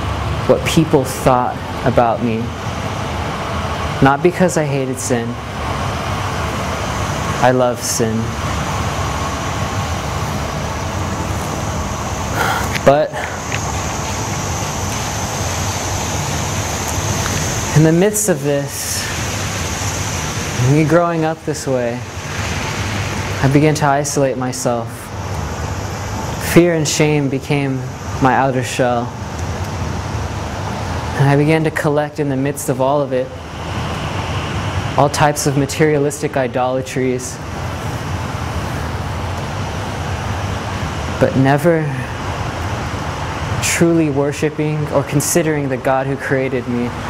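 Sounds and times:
distant traffic rumble: 0:00.0 - 0:47.0.

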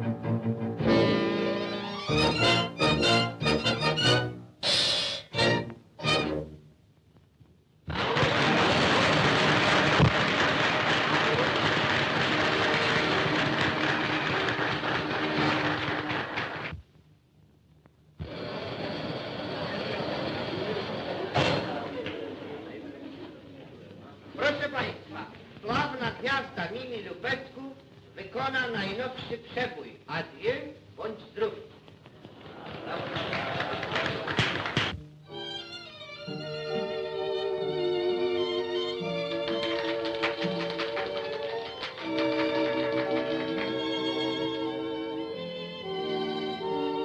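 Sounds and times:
audience applauding: 0:07.9 - 0:16.8, 0:32.3 - 0:35.0, 0:39.1 - 0:44.6
crowd noise: 0:07.9 - 0:16.8, 0:18.2 - 0:25.7, 0:32.1 - 0:35.0.

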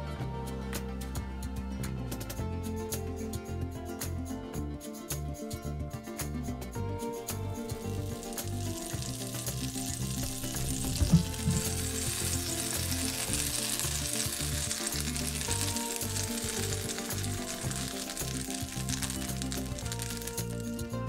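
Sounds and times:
butter sizzling in a frying pan: 0:07.6 - 0:20.9.

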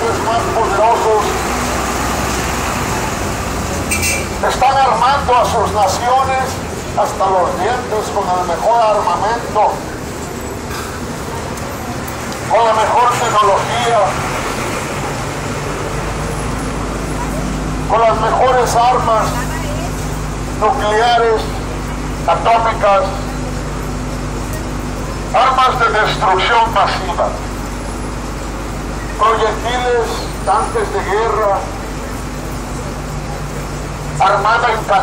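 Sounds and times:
passing cars rumbling: 0:00.0 - 0:35.0
vehicle engines running: 0:00.0 - 0:35.0.

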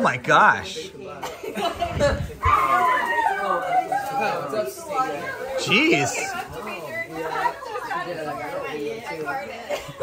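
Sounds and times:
indistinct group chatter: 0:00.0 - 0:10.0.

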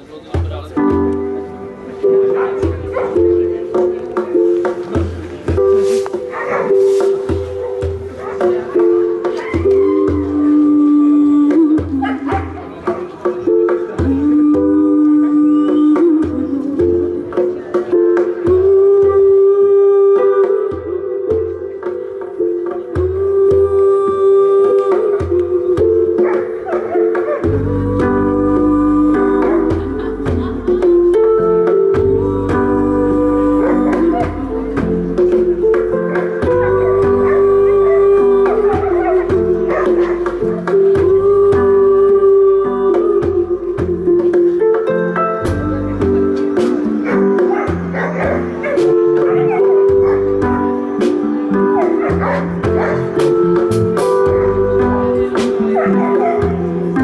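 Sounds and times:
reggae band playing: 0:00.0 - 0:57.0.

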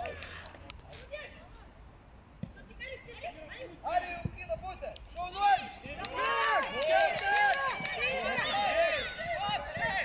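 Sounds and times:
people shouting and calling out: 0:02.5 - 0:10.0.

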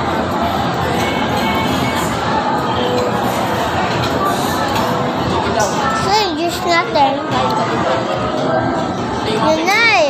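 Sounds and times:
dining room chatter: 0:00.0 - 0:10.0.

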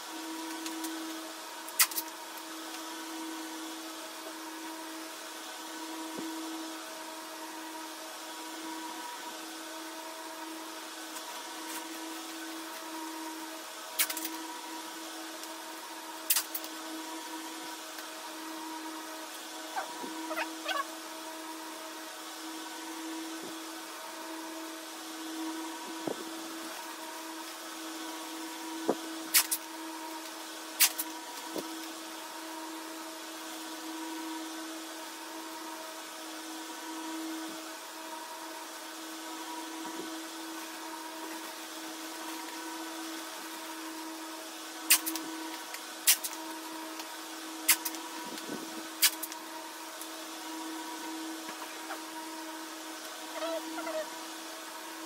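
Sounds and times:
motor hum: 0:05.8 - 0:30.2, 0:46.2 - 0:55.0.

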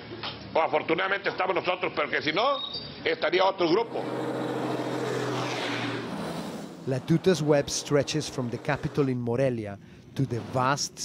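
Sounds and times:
truck diesel engine hum: 0:03.7 - 0:11.0
tyre and road noise: 0:03.8 - 0:09.5.

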